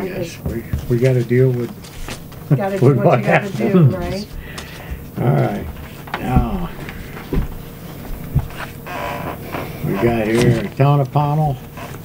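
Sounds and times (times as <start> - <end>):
paper shuffling: 0.4 - 12.0
man speaking: 2.6 - 4.2, 5.2 - 6.9, 9.8 - 11.6.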